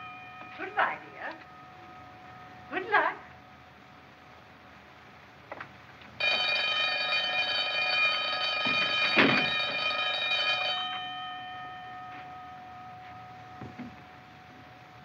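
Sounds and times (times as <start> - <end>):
iron gate clanging shut: 8.6 - 9.8.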